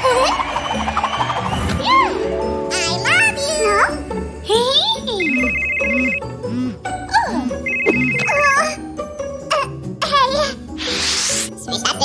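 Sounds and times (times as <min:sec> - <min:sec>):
background music: 0:00.0 - 0:12.0
phone ringtone ringing: 0:05.2 - 0:06.3, 0:07.6 - 0:08.4.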